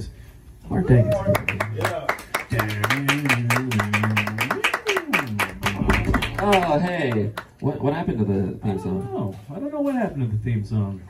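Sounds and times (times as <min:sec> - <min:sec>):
audience clapping: 0:01.0 - 0:07.6.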